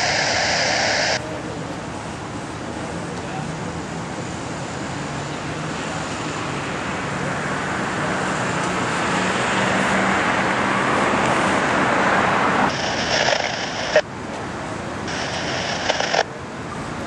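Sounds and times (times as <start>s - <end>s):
passing vehicle: 1.2s - 12.8s.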